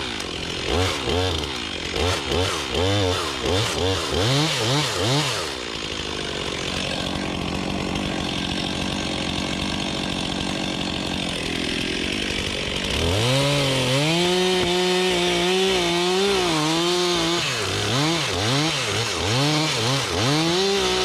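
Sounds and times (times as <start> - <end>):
chainsaw cutting into tree: 0.0 - 21.0.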